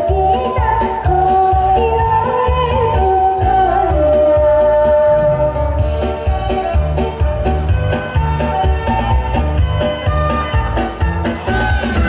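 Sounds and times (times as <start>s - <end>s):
girl singing into microphone: 0.0s - 5.8s
karaoke backing track: 0.0s - 12.0s.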